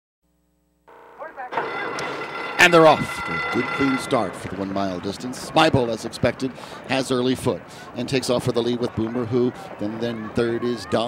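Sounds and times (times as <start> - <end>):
outdoor noise: 0.8 - 11.0.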